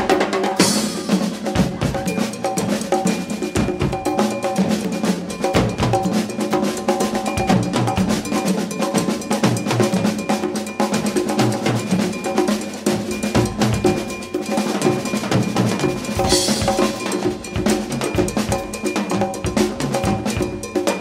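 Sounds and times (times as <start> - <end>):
conga drums: 0.0 - 21.0
drum kit: 0.0 - 21.0.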